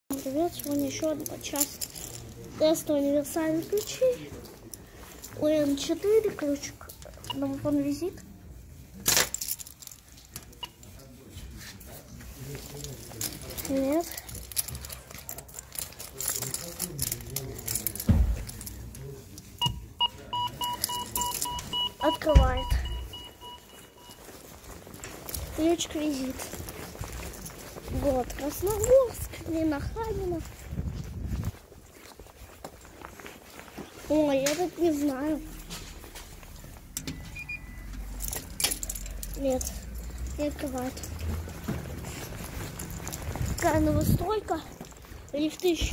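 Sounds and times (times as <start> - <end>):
keys jangling against key reader: 13.1 - 19.0, 20.4 - 24.2, 37.0 - 45.9
faint footsteps: 20.8 - 45.9.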